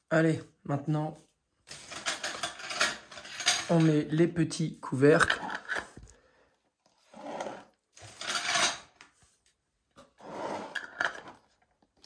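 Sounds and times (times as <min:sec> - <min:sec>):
metal lids twisting on glass jars: 0:01.7 - 0:04.0, 0:05.1 - 0:06.0, 0:10.6 - 0:11.5.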